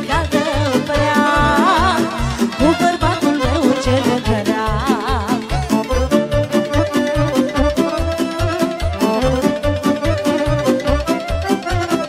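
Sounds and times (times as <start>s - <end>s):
violin melody: 0.0s - 12.0s.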